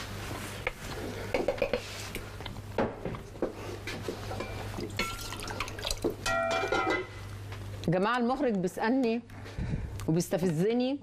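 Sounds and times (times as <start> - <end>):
spoon clinking against pot and dishes: 4.3 - 5.6, 6.2 - 7.2.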